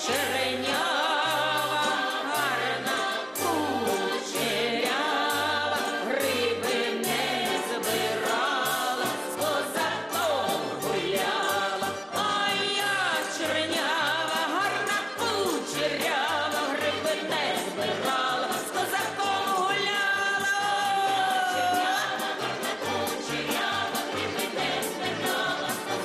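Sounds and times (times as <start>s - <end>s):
choir singing folk song: 0.0s - 26.0s.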